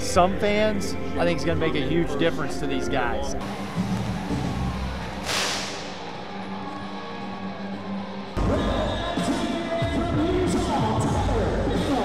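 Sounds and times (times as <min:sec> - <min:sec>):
music over sound system: 0:02.3 - 0:12.0
flame projector whoosh: 0:05.2 - 0:06.0.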